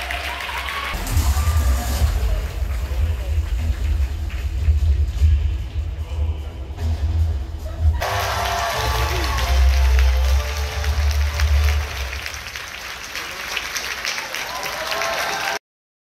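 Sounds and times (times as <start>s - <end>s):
audience applauding and cheering: 0.0s - 5.8s, 7.7s - 15.6s
crowd voices: 0.0s - 13.8s
music with heavy bass: 1.0s - 12.2s.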